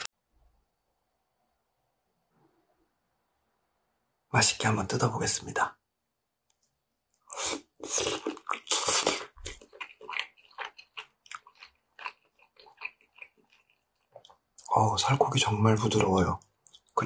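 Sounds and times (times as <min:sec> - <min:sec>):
chewing and lip smacks: 0:07.1 - 0:14.7, 0:16.4 - 0:17.0
biting and tearing meat: 0:07.8 - 0:14.4.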